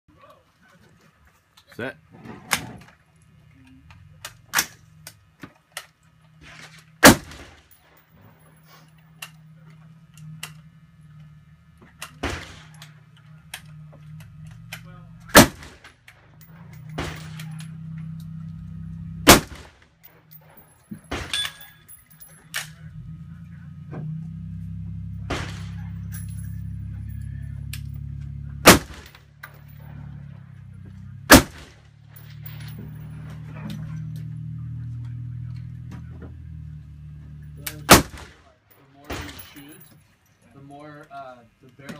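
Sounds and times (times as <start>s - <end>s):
low steady hum: 0.1s - 41.9s
rifle shots: 7.0s - 7.7s, 12.2s - 12.8s, 15.3s - 15.9s, 16.9s - 17.6s, 19.2s - 19.8s, 25.2s - 26.0s, 28.6s - 29.2s, 31.3s - 31.9s, 37.7s - 38.5s.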